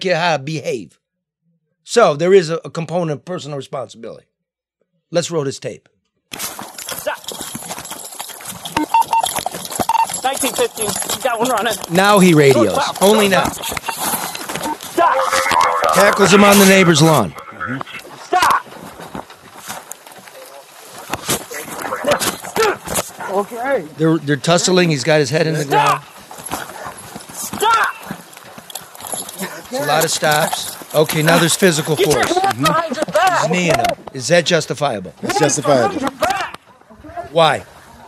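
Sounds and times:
bodies wrestling on the ground: 0:06.4 - 0:34.3, 0:35.1 - 0:38.0
short high electronic beeps: 0:08.8 - 0:10.2
short voice sound: 0:15.0 - 0:18.6.

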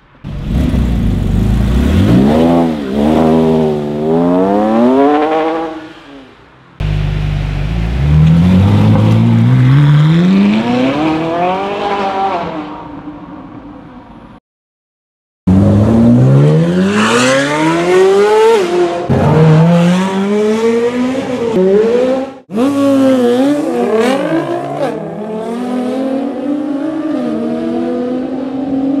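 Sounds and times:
engine revving: 0:00.3 - 0:05.8, 0:06.8 - 0:12.5, 0:15.5 - 0:29.0.

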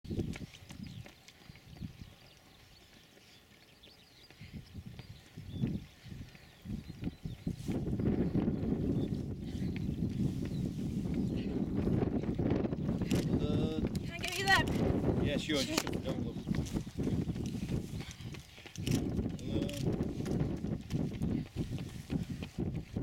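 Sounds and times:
wind buffeting microphone: 0:00.0 - 0:23.0.

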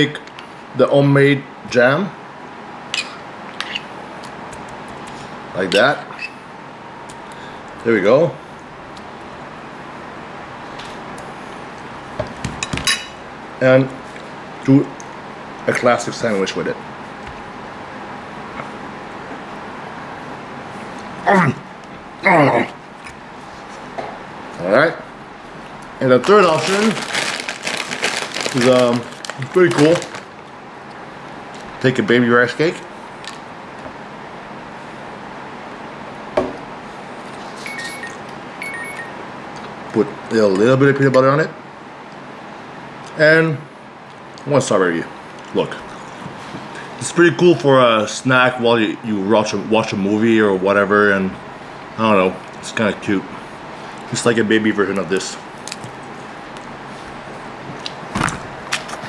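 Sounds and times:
steady room hiss: 0:00.0 - 0:59.0
short high tones: 0:37.6 - 0:39.2.

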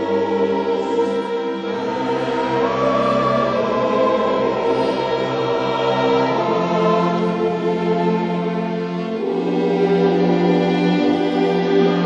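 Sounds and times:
mixed choir singing: 0:00.0 - 0:12.0
string orchestra: 0:00.0 - 0:12.0.

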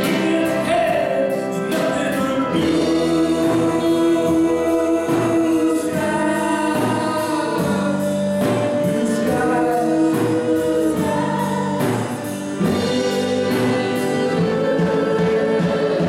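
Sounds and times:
gospel band playing: 0:00.0 - 0:16.0
women singing together: 0:02.8 - 0:16.0.

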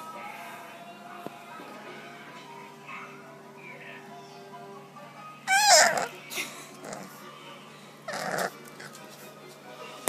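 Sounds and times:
puppy crying: 0:05.4 - 0:06.2, 0:06.8 - 0:07.2, 0:08.1 - 0:09.0.

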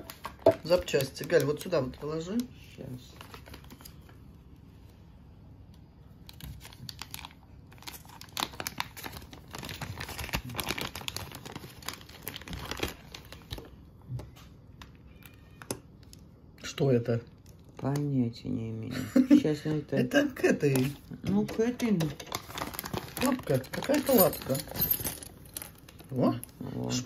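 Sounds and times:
plastic bag crinkling: 0:00.0 - 0:04.4, 0:06.2 - 0:13.8, 0:20.6 - 0:27.0.

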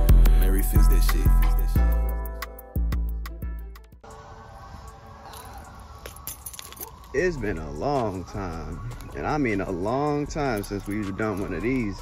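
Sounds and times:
footsteps crunching dry leaves: 0:04.1 - 0:12.0.

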